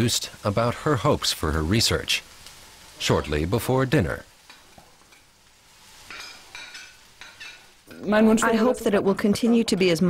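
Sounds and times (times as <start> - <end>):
sauce simmering and popping: 0.0 - 10.0.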